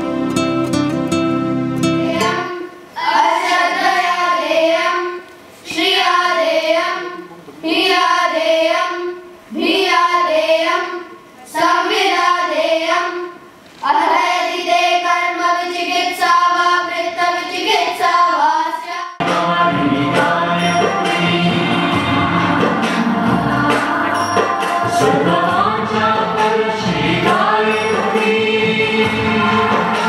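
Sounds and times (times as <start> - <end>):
boys singing in unison: 2.0 - 30.0.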